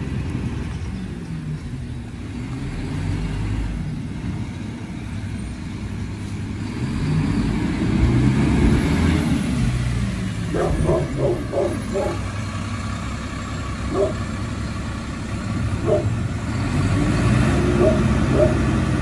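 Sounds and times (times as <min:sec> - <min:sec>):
vehicle engine rumbling: 0:00.0 - 0:19.0.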